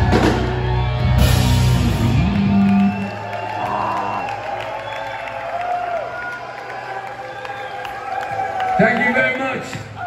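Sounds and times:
punk rock band: 0.0 - 3.0
crowd cheering and applauding: 0.0 - 10.0.

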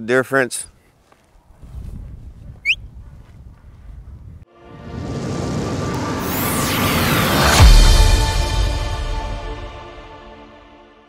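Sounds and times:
rising whoosh: 4.5 - 9.6.

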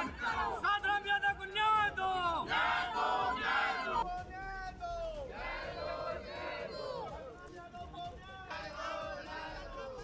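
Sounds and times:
crowd of men shouting: 0.0 - 0.8, 2.3 - 4.0.

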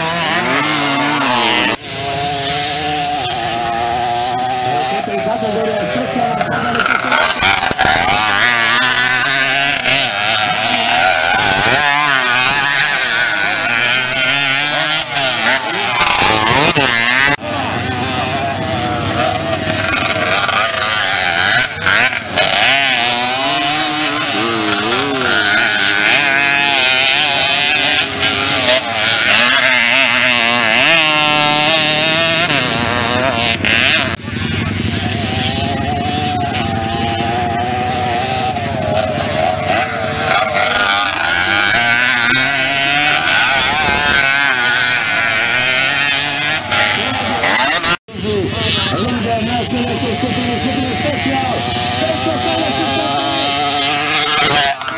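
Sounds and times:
two-stroke mopeds revving: 0.0 - 54.9.

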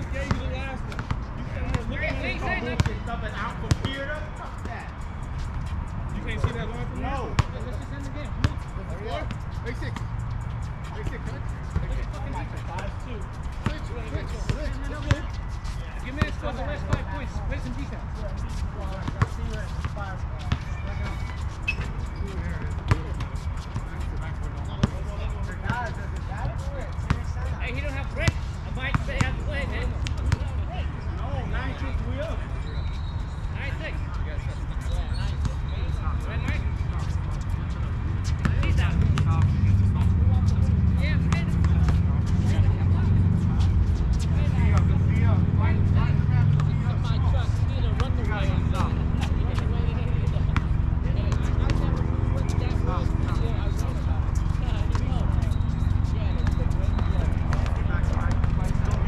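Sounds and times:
distant players' voices: 0.0 - 59.0
basketball bouncing on hard court: 0.3 - 1.8, 3.7 - 4.0, 20.4 - 24.0.

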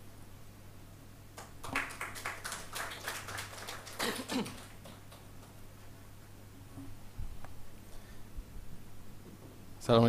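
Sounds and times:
faint steady low hum: 0.0 - 10.0
light scattered applause: 1.4 - 5.6.

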